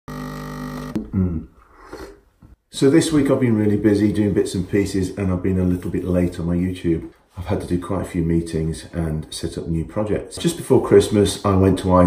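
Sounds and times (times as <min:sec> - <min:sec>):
espresso machine pump humming: 0:00.1 - 0:01.0
man low vocal sound: 0:01.0 - 0:01.6.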